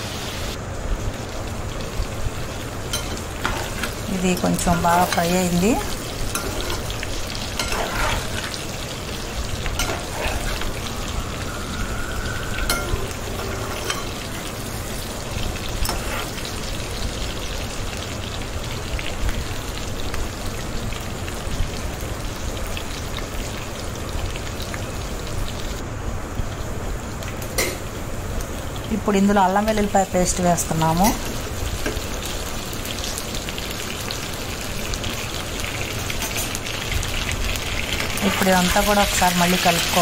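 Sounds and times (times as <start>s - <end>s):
food sizzling in hot oil: 0.0s - 40.0s.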